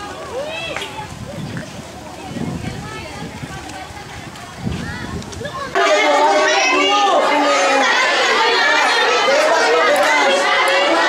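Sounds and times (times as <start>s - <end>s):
young children chattering: 0.0s - 11.0s.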